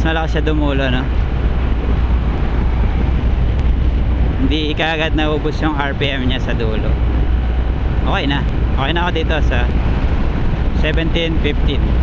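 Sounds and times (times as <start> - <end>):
wind rush over microphone: 0.0 - 12.0.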